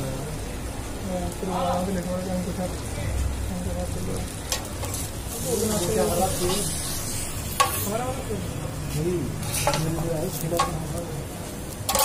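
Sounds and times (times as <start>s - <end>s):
buns sizzling on griddle: 0.0s - 12.0s.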